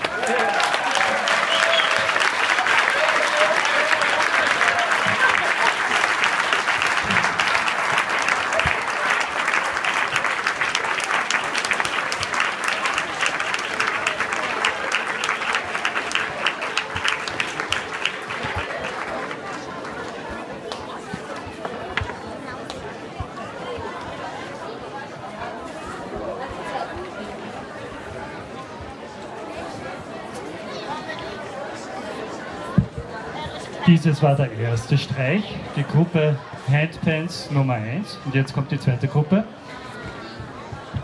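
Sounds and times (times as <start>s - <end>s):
audience applauding: 0.0s - 20.2s.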